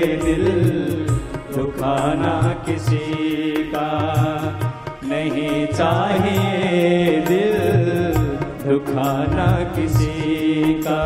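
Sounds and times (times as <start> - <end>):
devotional melody: 0.0 - 11.0
repeating drum beat: 0.0 - 11.0.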